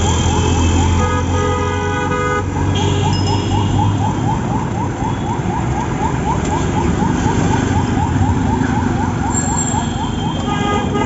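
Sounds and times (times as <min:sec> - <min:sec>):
street traffic rumble: 0:00.0 - 0:11.0
vehicle horn: 0:09.8 - 0:11.0.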